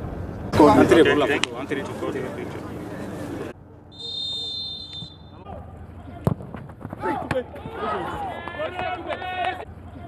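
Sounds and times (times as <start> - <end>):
footballers shouting: 4.0 - 10.0.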